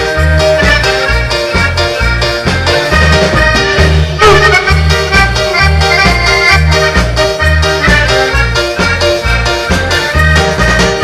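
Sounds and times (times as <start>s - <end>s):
accordion: 0.0s - 11.0s
dance band playing polka: 0.0s - 11.0s
oom-pah bass: 0.0s - 11.0s.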